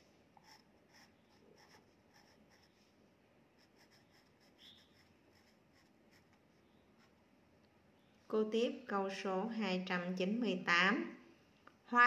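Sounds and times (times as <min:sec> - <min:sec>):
pen scratching on paper: 0:00.4 - 0:02.8, 0:03.6 - 0:07.2.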